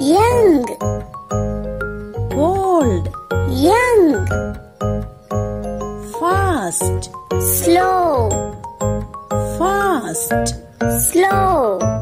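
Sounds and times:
person calling out: 0.0s - 0.8s, 2.3s - 4.3s, 6.1s - 8.4s, 9.6s - 11.9s
jingly children's music: 0.0s - 12.0s.

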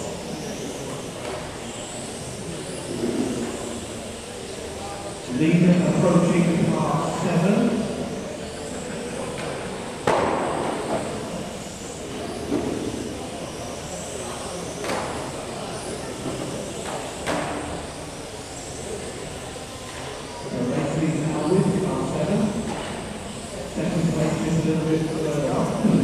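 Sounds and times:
rc car motor whine: 0.0s - 25.9s.

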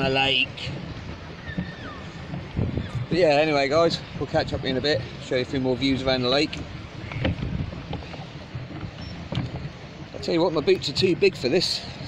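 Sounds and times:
wind and water rumble: 0.0s - 12.0s
boot kicking boat bottom: 6.4s - 11.2s.

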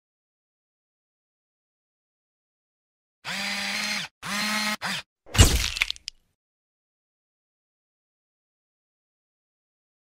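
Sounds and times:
small electric motor whirring: 3.2s - 5.1s.

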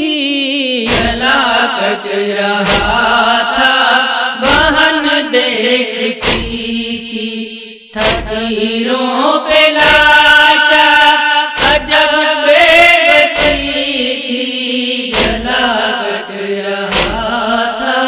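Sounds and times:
chanted vocal lament: 0.0s - 18.0s
dull thuds: 0.9s - 1.2s, 2.7s - 3.1s, 6.2s - 6.7s, 8.0s - 8.4s, 11.6s - 12.0s, 15.1s - 15.6s, 16.9s - 17.4s.

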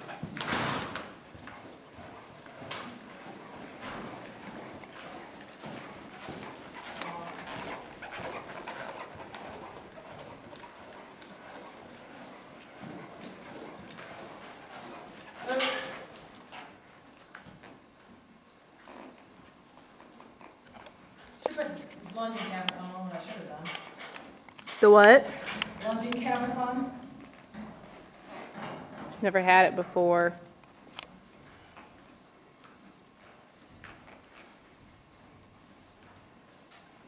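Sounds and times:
horse moving on soft dirt: 0.0s - 37.0s.

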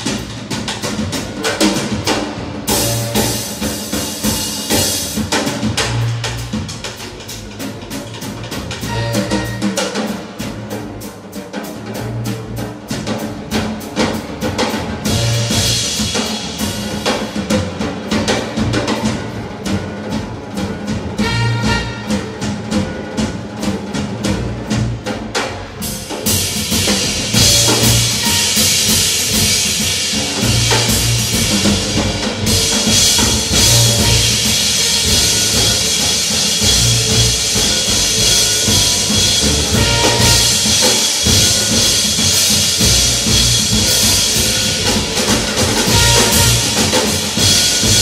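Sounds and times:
drum kit with cymbals: 0.0s - 48.0s
piano: 0.0s - 48.0s
walking double bass: 0.0s - 48.0s.

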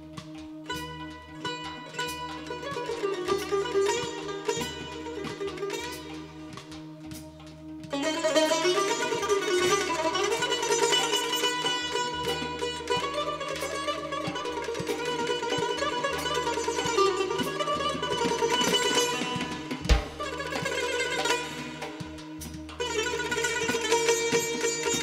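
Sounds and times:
fast plucked tar melody: 0.0s - 25.0s
oud: 0.0s - 25.0s.

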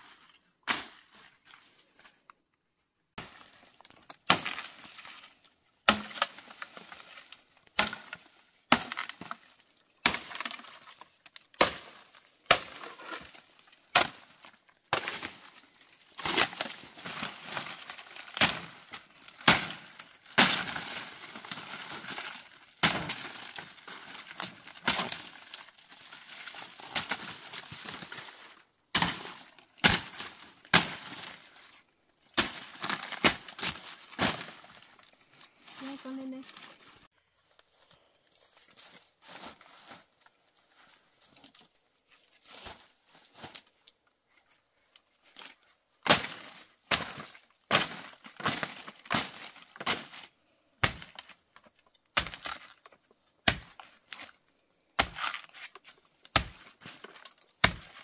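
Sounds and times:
dry stalks snapping: 3.2s - 31.6s, 32.3s - 35.5s, 45.3s - 54.4s, 55.0s - 58.0s
dry leaves crackling: 14.4s - 37.1s.

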